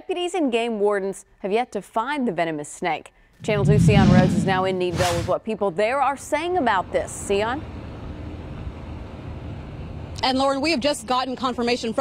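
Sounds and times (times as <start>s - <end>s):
wind on microphone: 3.4s - 5.4s.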